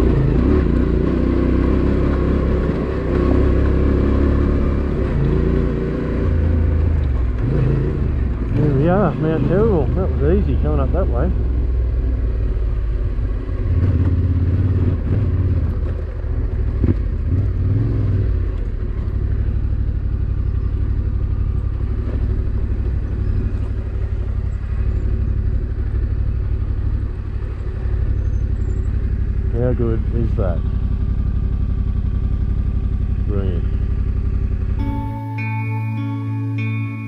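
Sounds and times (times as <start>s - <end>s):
motorcycle engine running: 0.0s - 37.0s.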